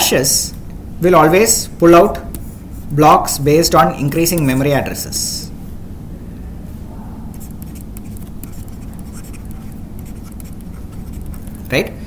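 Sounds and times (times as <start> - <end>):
low room hum: 0.0 - 12.0
stylus scratching on tablet: 4.2 - 4.8, 7.3 - 11.6.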